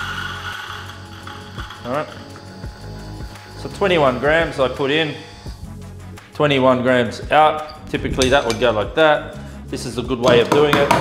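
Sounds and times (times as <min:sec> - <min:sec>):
coffee grinder motor whine: 0:00.0 - 0:06.0.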